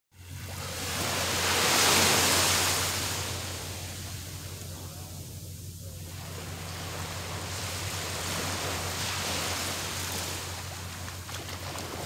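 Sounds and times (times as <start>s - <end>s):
ocean wave breaking on sand: 0.2s - 4.3s, 6.1s - 12.0s.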